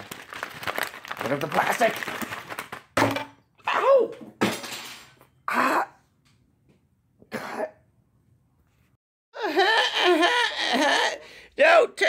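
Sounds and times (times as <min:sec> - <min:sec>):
man clearing his throat: 0:07.3 - 0:07.8.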